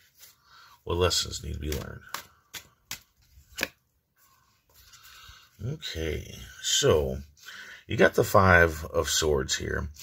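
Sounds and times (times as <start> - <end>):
cards being handled: 1.0 - 5.1
card snapping: 1.6 - 3.8.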